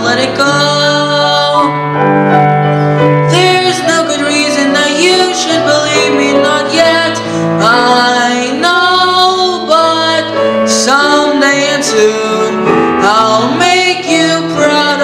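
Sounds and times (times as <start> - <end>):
grand piano: 0.0 - 15.0
young man singing ballad: 3.3 - 15.0.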